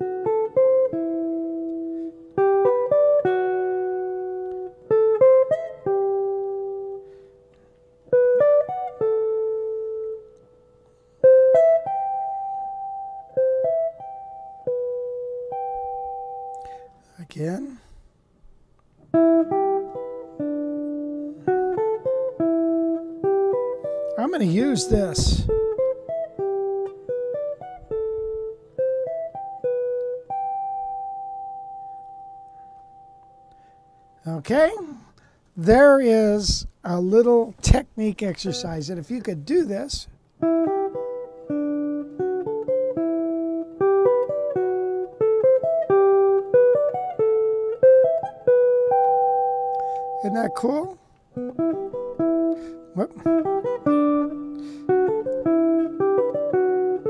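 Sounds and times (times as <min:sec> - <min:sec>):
guitar picked intervals: 0:00.0 - 0:57.0.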